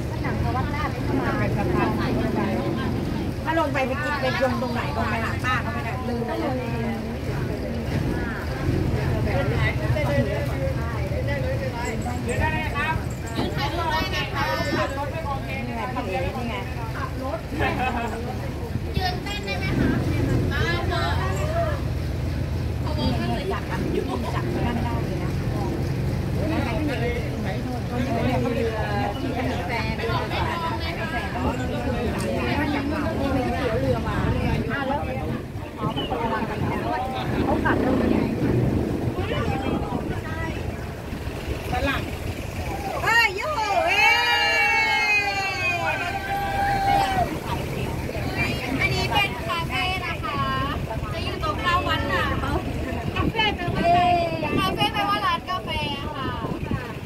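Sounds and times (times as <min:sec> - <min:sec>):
boat engine droning: 0:00.0 - 0:57.0
faint voices: 0:00.0 - 0:57.0
people talking: 0:00.0 - 0:57.0.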